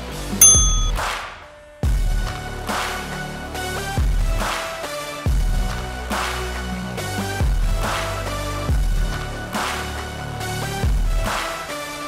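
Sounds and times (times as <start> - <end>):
electronic bell ding: 0.4 - 1.1.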